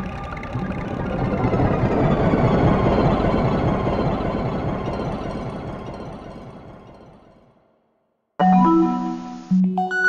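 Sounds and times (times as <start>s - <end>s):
rumbling electronic noise: 0.0s - 7.3s.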